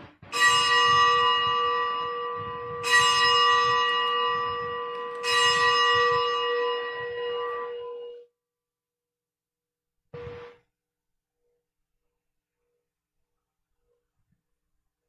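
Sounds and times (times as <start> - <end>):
bell ringing: 0.3 - 8.3.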